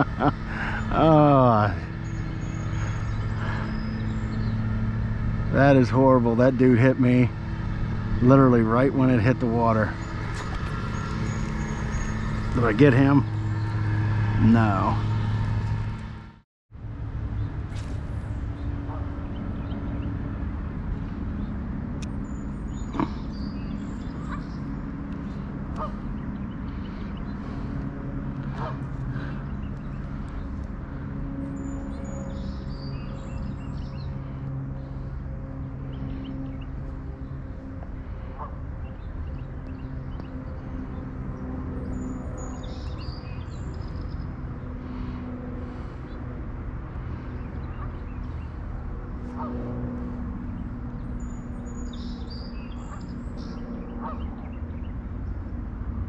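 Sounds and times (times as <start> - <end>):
small engine running: 0.0 - 56.0.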